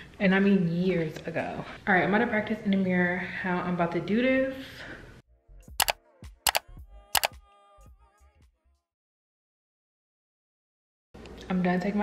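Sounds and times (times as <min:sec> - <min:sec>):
camera shutter clicks: 0:05.8 - 0:06.6.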